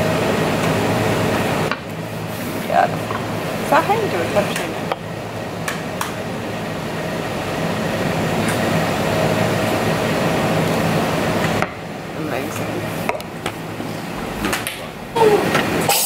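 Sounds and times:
cafe chatter: 0:02.5 - 0:05.0
espresso machine hissing: 0:15.2 - 0:16.0.

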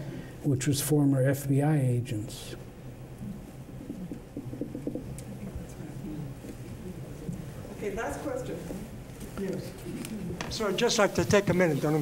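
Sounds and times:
faint muffled voices: 0:03.9 - 0:12.0.

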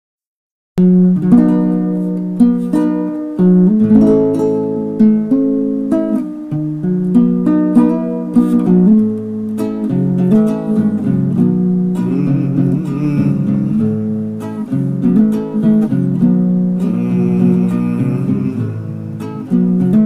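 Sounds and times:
acoustic guitar playing: 0:00.8 - 0:20.0.

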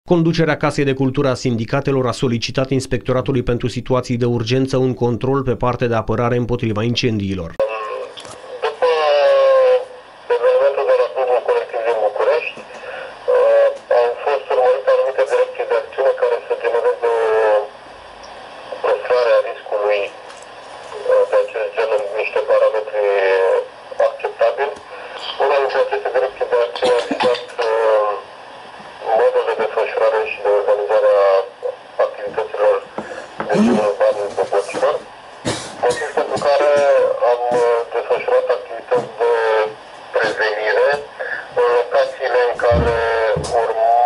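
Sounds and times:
person talking over telephone: 0:00.1 - 0:17.8, 0:18.7 - 0:20.3, 0:20.9 - 0:28.3, 0:29.0 - 0:44.0.

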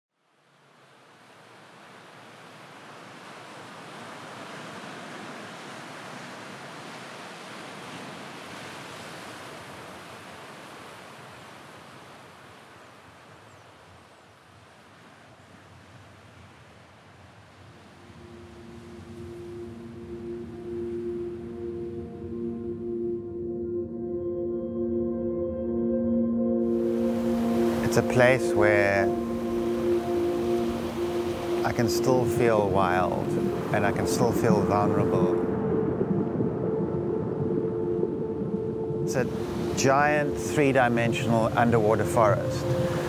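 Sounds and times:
ocean surf on rocky shore: 0:00.3 - 0:22.3, 0:26.7 - 0:43.0
ambient music tones: 0:18.0 - 0:43.0.

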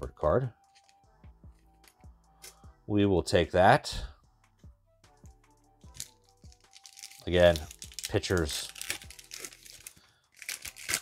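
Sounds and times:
faint background music: 0:00.0 - 0:11.0
card pack wrapper tearing: 0:06.0 - 0:11.0.

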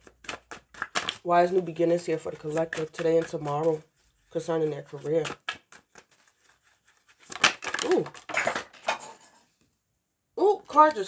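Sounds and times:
cards clattering and rustling: 0:00.0 - 0:09.4
person saying ooh: 0:07.8 - 0:08.2.

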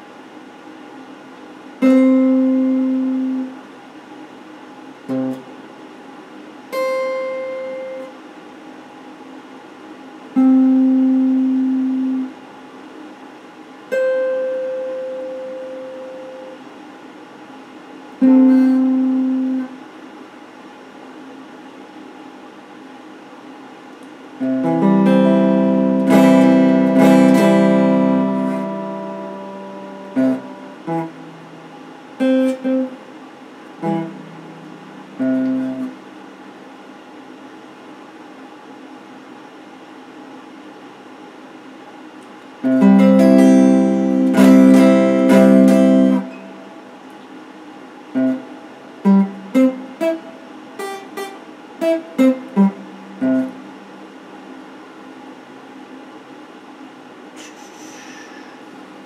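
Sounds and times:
faint steady hiss: 0:00.0 - 0:59.0
electric guitar notes: 0:01.8 - 0:03.6, 0:05.1 - 0:05.5, 0:06.8 - 0:08.1, 0:10.4 - 0:12.3, 0:13.9 - 0:16.6, 0:18.2 - 0:19.8, 0:24.4 - 0:36.4, 0:42.6 - 0:47.0, 0:48.2 - 0:54.2.

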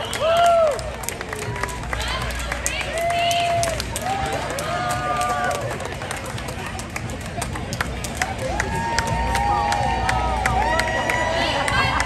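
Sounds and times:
crowd voices: 0:00.0 - 0:12.0
scattered clapping: 0:00.0 - 0:12.0.

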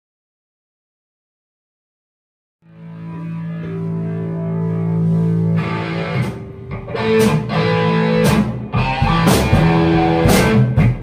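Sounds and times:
distorted electric guitar chord: 0:02.7 - 0:11.0
drum kit hits: 0:06.2 - 0:11.0.

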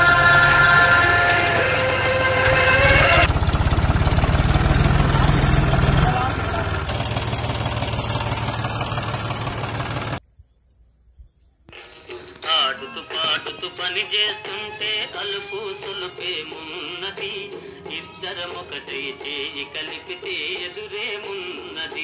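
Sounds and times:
chanted song: 0:00.0 - 0:03.3
tractor engine idling: 0:00.0 - 0:10.2.

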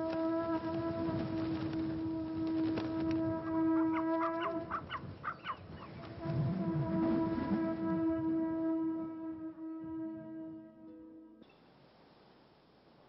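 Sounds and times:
horn-like wind instrument note: 0:00.0 - 0:04.7, 0:06.0 - 0:11.4
low rumbling noise: 0:06.1 - 0:10.7.

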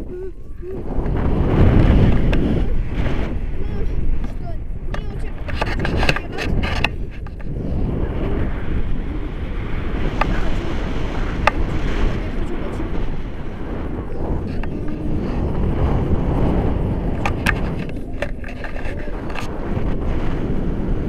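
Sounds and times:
wind noise on microphone: 0:00.0 - 0:21.0.

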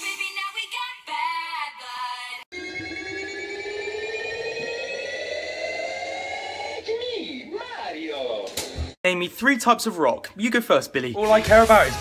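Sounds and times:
buzzy tone rising in pitch: 0:02.6 - 0:06.8.

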